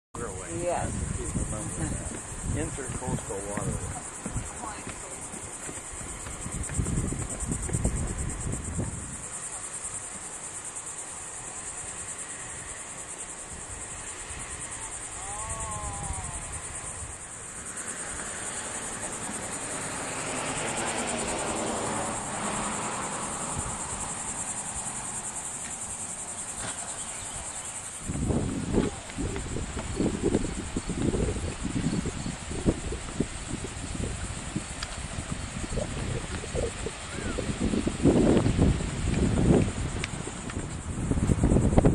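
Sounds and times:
wind rumbling on microphone: 0:00.2 - 0:10.1, 0:12.2 - 0:25.6, 0:26.2 - 0:41.9
insects buzzing: 0:00.2 - 0:41.9.

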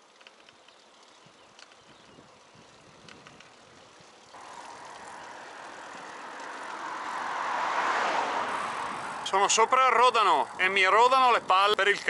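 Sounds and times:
road vehicle passing: 0:04.3 - 0:11.0.

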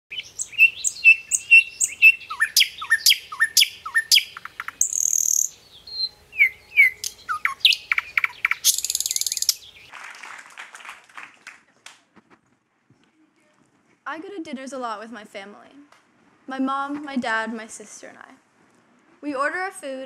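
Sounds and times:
birds chirping and whistling: 0:00.1 - 0:09.9.

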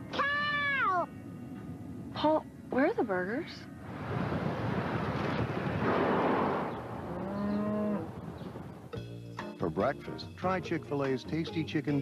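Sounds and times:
cow mooing: 0:07.0 - 0:08.2.

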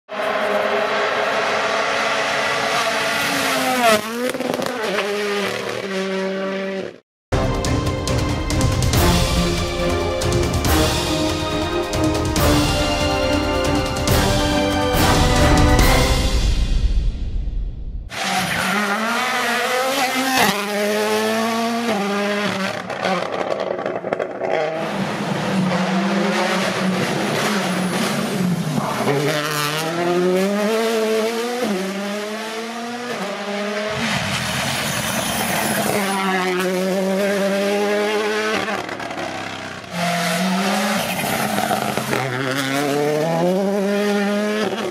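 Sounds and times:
rally car engine revving hard: 0:00.1 - 0:07.0, 0:18.1 - 0:44.9
music: 0:07.3 - 0:18.0.

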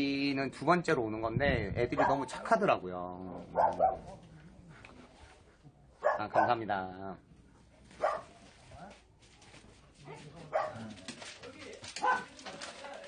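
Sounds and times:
dogs barking: 0:01.9 - 0:02.5, 0:03.4 - 0:04.3, 0:06.0 - 0:06.6, 0:08.0 - 0:08.4, 0:10.0 - 0:10.9, 0:12.0 - 0:12.4.

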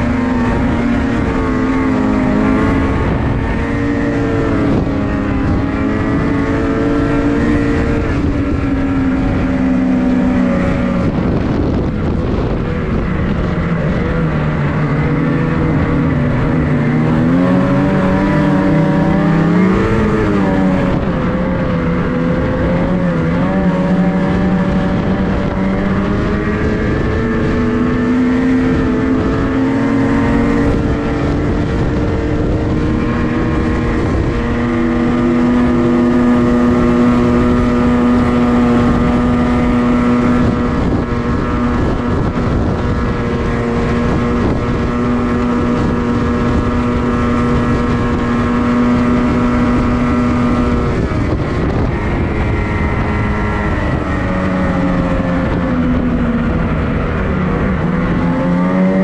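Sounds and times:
snowmobile engine running: 0:00.0 - 0:59.0
track and wind noise: 0:00.0 - 0:59.0.

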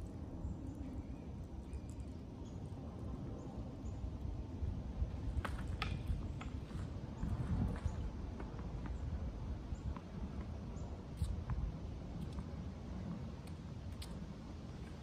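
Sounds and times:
wind on microphone: 0:03.0 - 0:15.0.

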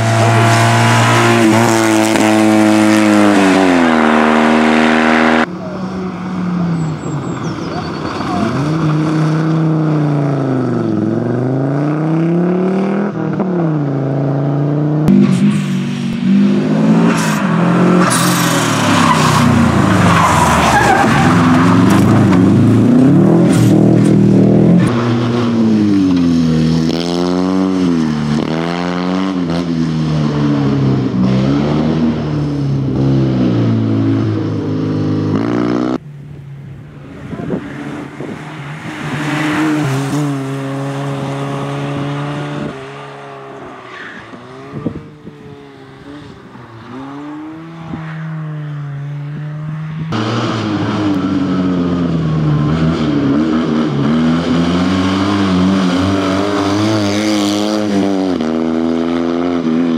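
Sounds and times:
rally car engines revving: 0:00.0 - 0:36.0, 0:36.8 - 0:59.9.

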